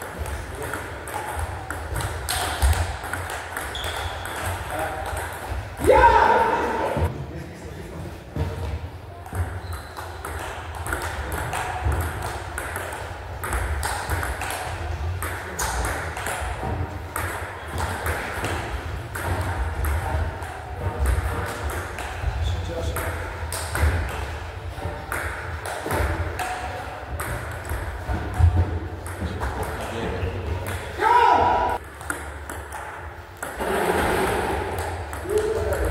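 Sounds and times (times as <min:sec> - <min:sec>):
ping pong ball clicking: 0:09.7 - 0:16.4.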